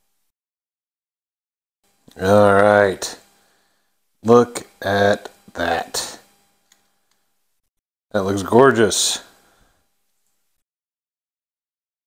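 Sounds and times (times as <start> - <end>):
faint steady hum: 0.0 - 0.3, 1.9 - 10.6.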